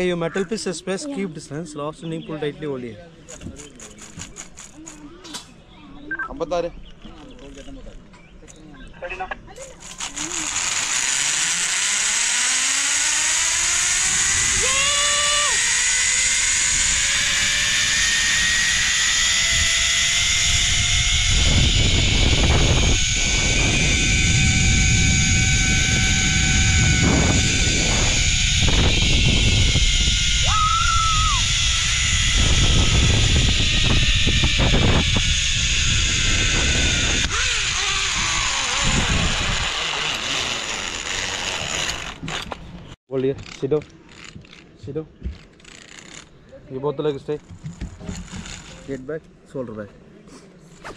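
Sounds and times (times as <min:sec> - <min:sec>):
zip line pulleys whining on cable: 0:03.3 - 0:05.1, 0:09.6 - 0:44.6, 0:45.4 - 0:46.3, 0:47.3 - 0:49.1
wind rumbling on microphone: 0:16.6 - 0:40.4.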